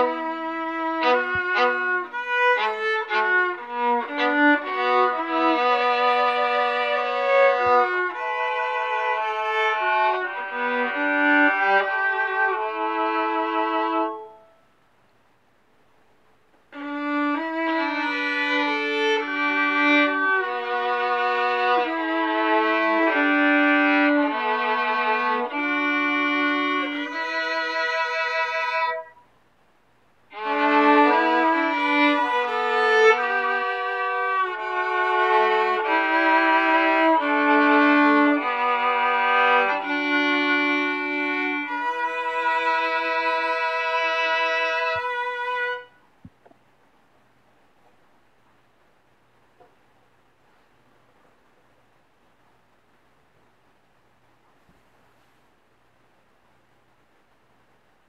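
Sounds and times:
solo violin slow melody: 0.0s - 14.6s, 16.7s - 29.2s, 30.3s - 46.0s.

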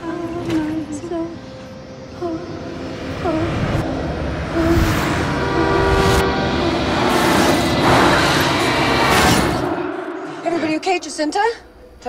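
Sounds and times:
loud horn-like chord: 2.2s - 10.9s
rising whoosh: 2.6s - 10.6s.

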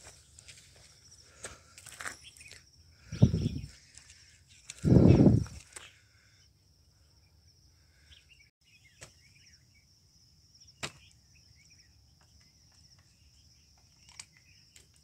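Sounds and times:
faint bird chirps: 2.0s - 15.0s.

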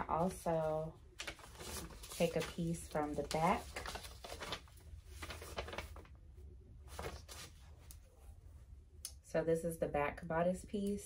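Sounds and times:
paper and fabric rustling: 0.0s - 6.2s, 6.8s - 8.3s
low steady hum: 0.0s - 11.0s.

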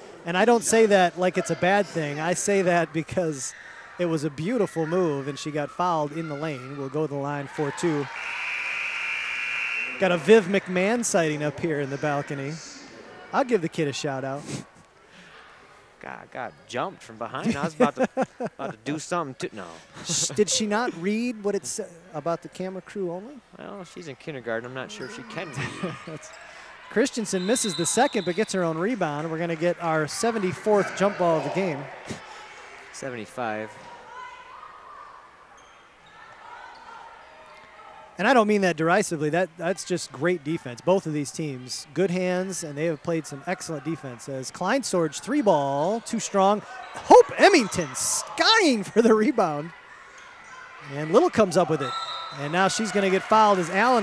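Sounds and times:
faint gym ambience: 0.0s - 54.0s
faint distant voices in a hall: 30.0s - 38.2s.

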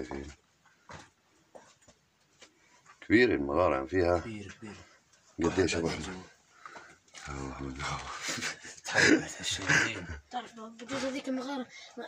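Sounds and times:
footsteps on stony floor: 0.2s - 3.1s.

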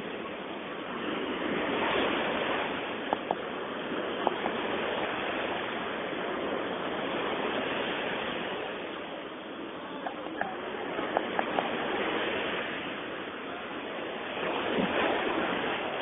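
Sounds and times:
sea waves breaking: 0.0s - 16.0s.

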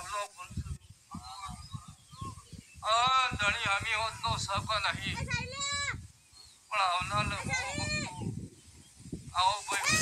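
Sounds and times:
loud speech: 0.0s - 6.1s, 6.7s - 8.4s, 9.3s - 10.0s.

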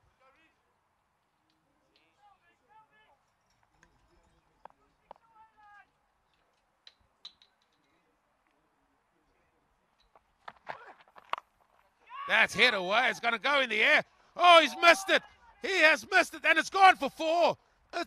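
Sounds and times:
distant players calling: 12.0s - 18.0s.

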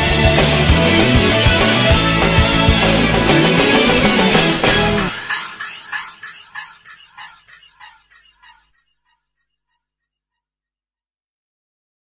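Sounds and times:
pop-rock song: 0.0s - 5.3s.

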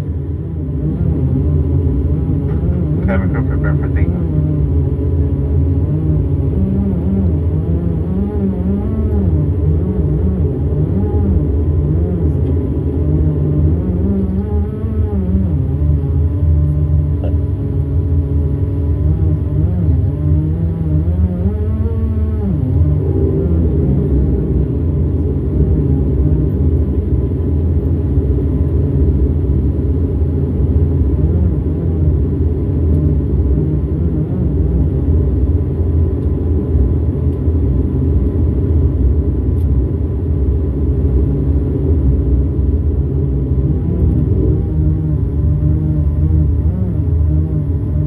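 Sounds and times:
turboprop engines droning: 0.0s - 48.0s.

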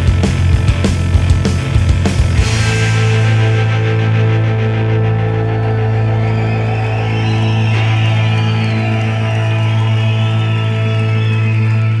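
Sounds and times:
rock band sustained chord: 0.0s - 12.0s.

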